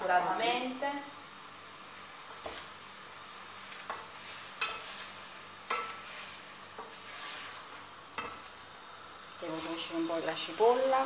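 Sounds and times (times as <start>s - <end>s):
meat sizzling in oil: 1.2s - 11.0s
wooden spoon scraping pan: 3.6s - 8.5s.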